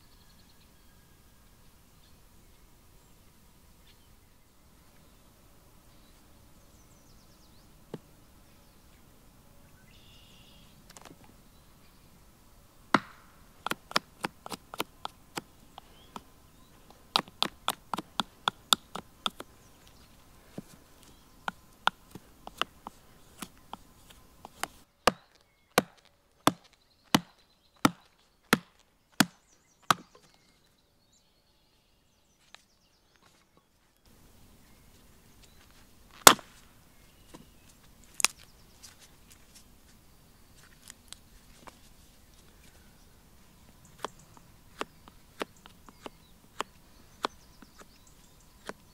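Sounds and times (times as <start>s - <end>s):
knife chopping wood: 12.9s - 19.5s, 21.4s - 30.3s, 36.2s - 36.6s, 44.0s - 47.9s, 48.6s - 48.8s.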